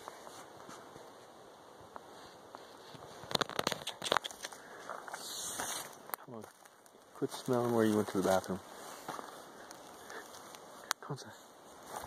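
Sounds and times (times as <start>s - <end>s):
soft rustle: 0.0s - 12.0s
dry twigs cracking: 3.0s - 11.2s.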